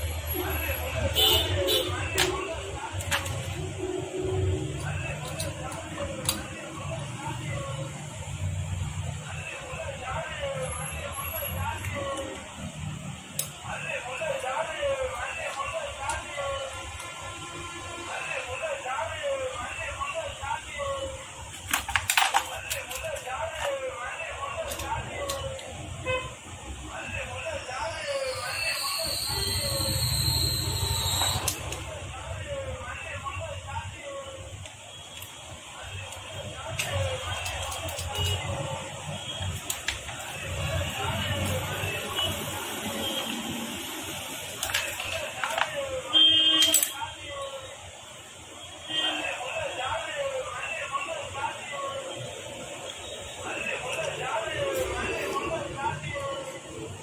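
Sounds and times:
voices talking: 0.0 - 17.4, 18.0 - 57.0
metal parts clicking: 4.8 - 6.6, 21.5 - 23.8, 36.7 - 38.5, 46.6 - 47.0.

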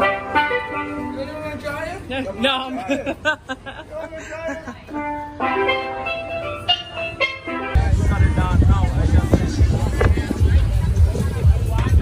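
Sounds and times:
steel pan melody: 0.0 - 2.3, 4.8 - 8.4
wind rumbling on microphone: 7.8 - 12.0.

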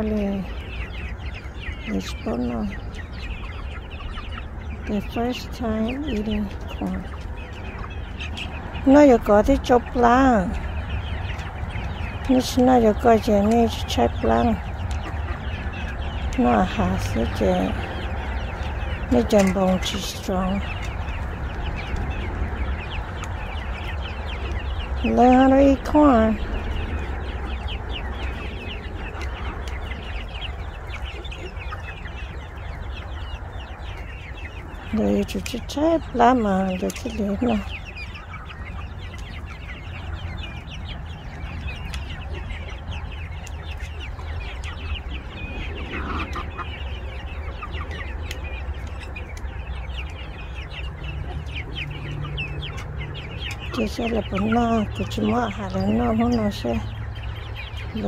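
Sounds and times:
beaks pecking grain and bucket: 0.0 - 58.0
chicks chirping and clucking: 0.0 - 58.0
steady low rumble: 0.0 - 58.0.

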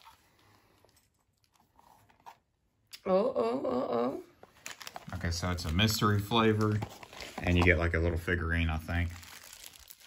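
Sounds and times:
faint rustling and handling: 4.4 - 10.0.

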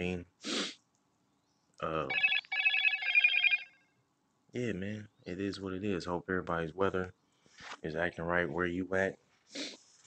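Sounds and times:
electronic phone ringtone: 2.1 - 3.8.

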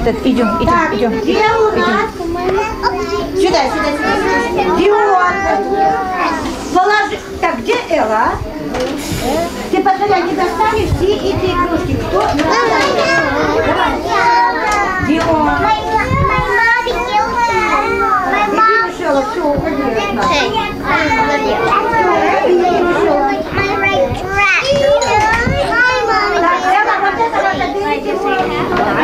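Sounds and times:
young children chattering: 0.0 - 29.0.

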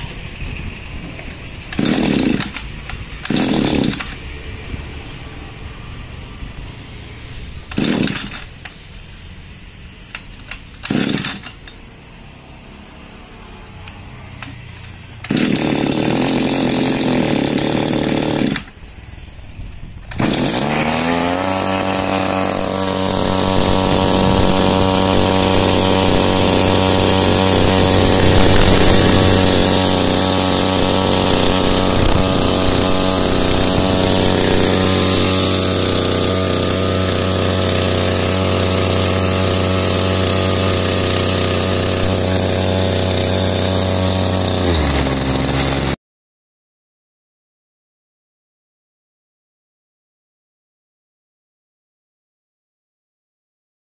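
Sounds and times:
small two-stroke engine running: 1.7 - 4.3, 7.6 - 8.9, 10.1 - 11.8, 12.4 - 18.8, 20.1 - 46.0.

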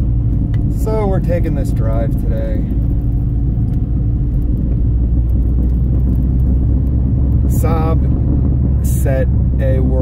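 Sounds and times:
car engine rumble: 0.0 - 10.0
tyres on road: 0.0 - 10.0.

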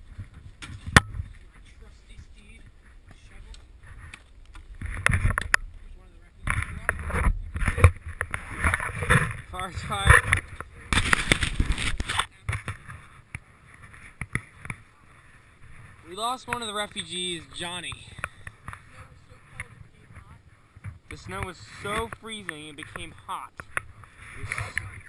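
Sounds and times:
camera handling clicks and rustles: 3.5 - 5.7, 10.1 - 14.8.

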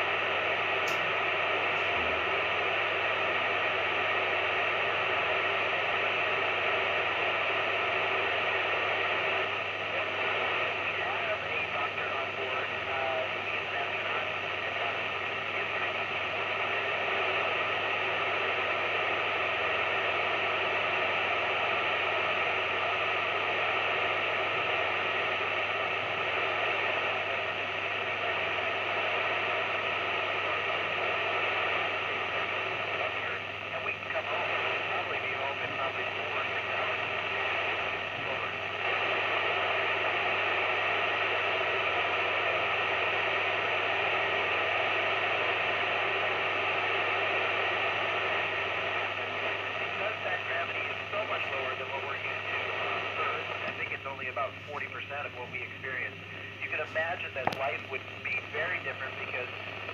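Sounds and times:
radio scanner static hiss: 0.0 - 59.9.

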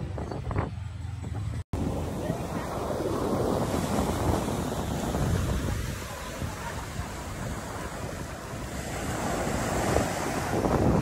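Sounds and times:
wind buffeting microphone: 0.0 - 11.0
ocean surf washing onto beach: 1.8 - 11.0.

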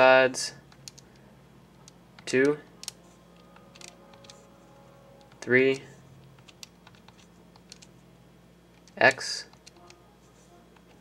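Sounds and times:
faint steady hum: 0.0 - 11.0
calculator keys clicking: 0.7 - 1.1, 3.6 - 4.4, 6.2 - 7.9, 8.8 - 10.0.

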